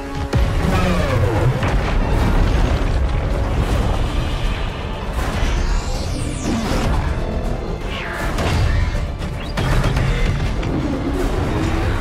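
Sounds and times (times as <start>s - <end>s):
film music: 0.0s - 12.0s
rumble of crashing debris: 1.5s - 4.6s.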